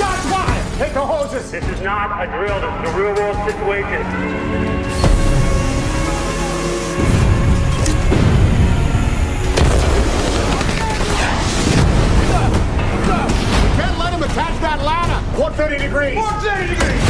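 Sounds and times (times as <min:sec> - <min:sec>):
deep booming hits: 0:04.9 - 0:06.0, 0:07.0 - 0:10.9.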